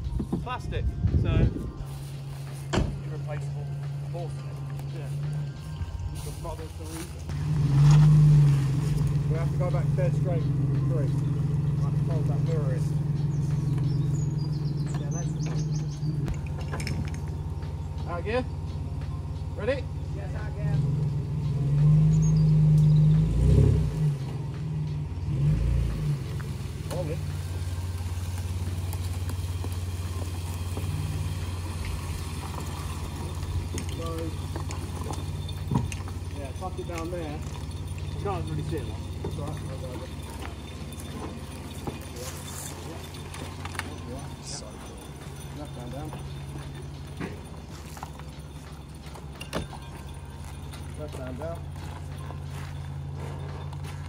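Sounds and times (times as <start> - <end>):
vehicle engine under load: 0.0 - 54.0.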